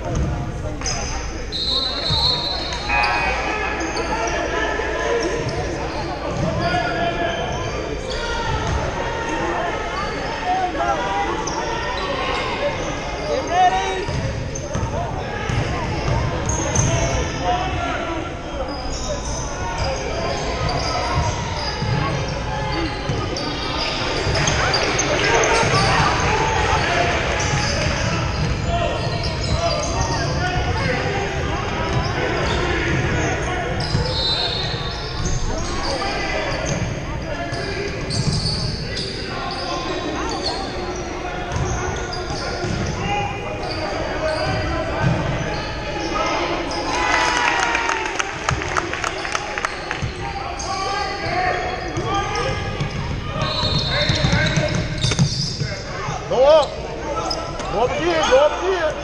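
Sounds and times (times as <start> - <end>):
voices echoing in a hall: 0.0 - 59.0.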